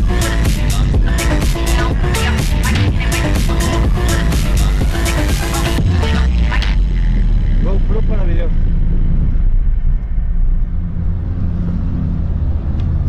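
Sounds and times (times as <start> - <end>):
passing motor traffic: 0.7 - 13.0.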